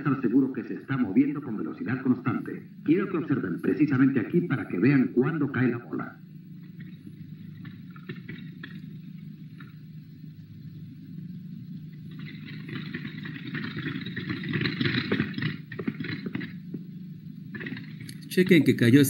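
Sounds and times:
steady low hum: 0:00.0 - 0:19.0
cart rolling with clicks: 0:06.7 - 0:08.9, 0:12.0 - 0:16.8, 0:17.5 - 0:18.5.

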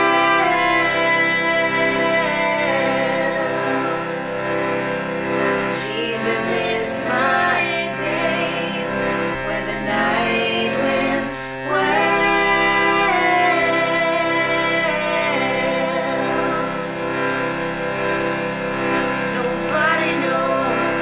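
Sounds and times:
two women singing a country ballad: 0:00.0 - 0:04.1, 0:05.7 - 0:16.8.

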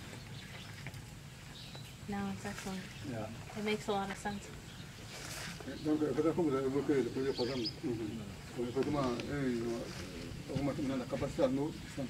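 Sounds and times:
men talking in low voices: 0:05.6 - 0:12.0.

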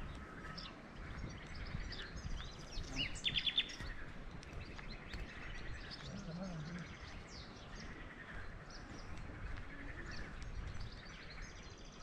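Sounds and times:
small songbirds chirping: 0:00.0 - 0:12.0.

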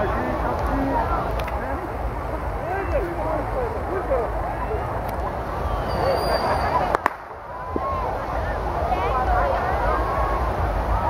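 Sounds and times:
people talking: 0:00.0 - 0:11.0
wind rumble on microphone: 0:00.0 - 0:11.0
sharp cracks: 0:06.9 - 0:07.9.

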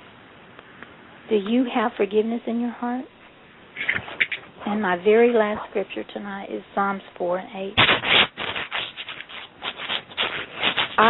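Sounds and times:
rustling and scraping: 0:03.7 - 0:05.8, 0:07.8 - 0:11.0.

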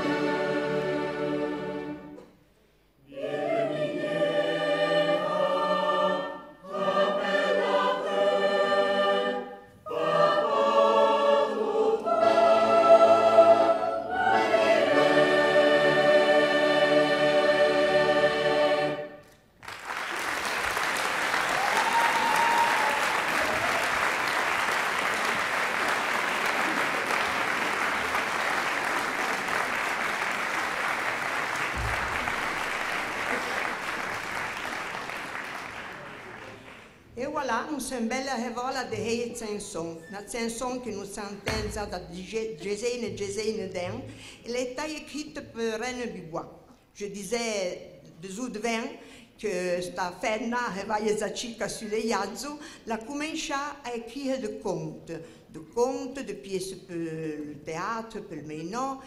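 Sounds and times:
large choir singing: 0:00.0 - 0:02.2, 0:03.0 - 0:19.3
audience applause: 0:19.6 - 0:37.0.

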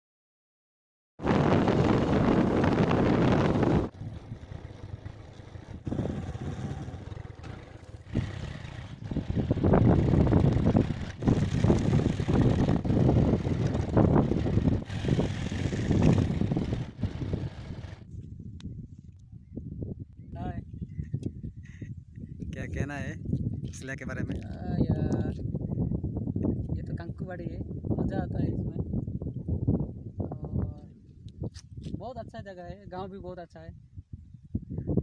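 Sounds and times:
wind buffeting microphone: 0:01.2 - 0:35.0.

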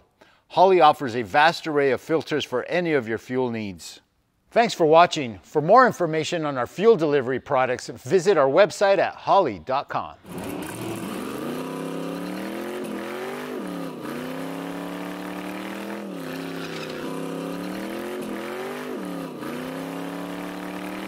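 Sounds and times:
spinning tire hiss: 0:10.3 - 0:19.4
car engine at high revs: 0:10.3 - 0:21.0.

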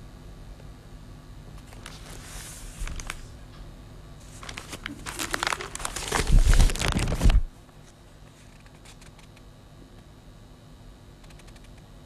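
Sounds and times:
newspaper rustling and crinkling: 0:01.6 - 0:03.3, 0:04.2 - 0:09.3.

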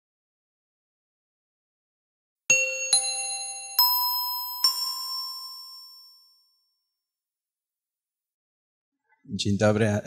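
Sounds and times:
bell-like chime jingle: 0:02.5 - 0:07.0.

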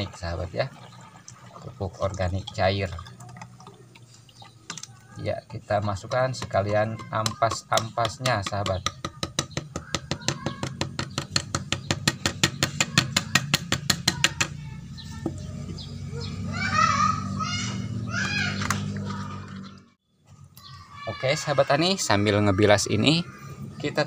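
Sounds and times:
birds chirping: 0:00.0 - 0:24.0.

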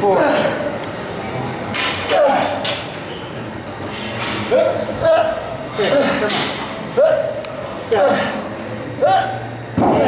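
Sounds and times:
men grunting with effort: 0:02.0 - 0:02.7, 0:04.5 - 0:06.4, 0:07.0 - 0:10.0.

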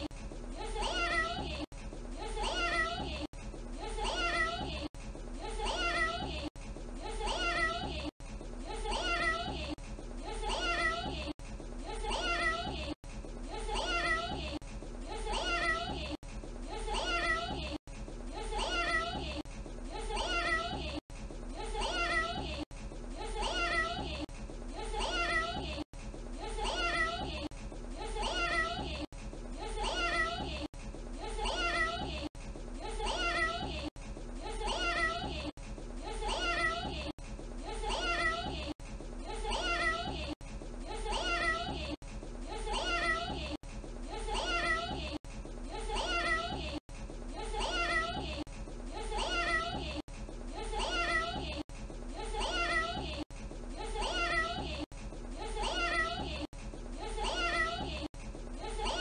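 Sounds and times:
child saying meow: 0:10.5 - 0:11.1, 0:42.7 - 0:43.3, 0:54.0 - 0:54.6.

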